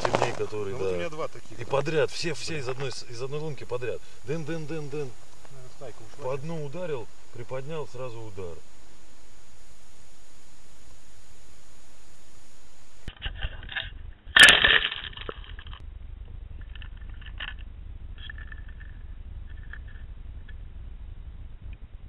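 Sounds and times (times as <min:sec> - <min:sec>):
sharp crack: 0:00.0 - 0:13.1
steady hiss: 0:00.0 - 0:13.1
low rumble: 0:00.0 - 0:14.4, 0:15.1 - 0:22.0.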